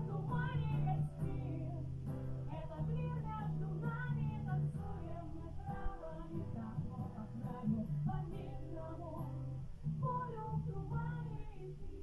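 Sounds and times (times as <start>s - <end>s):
acoustic guitars: 0.0s - 12.0s
women singing together: 0.0s - 12.0s.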